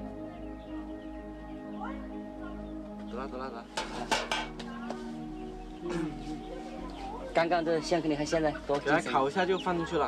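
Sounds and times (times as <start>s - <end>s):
metal pot and utensils clinking: 3.8s - 4.7s.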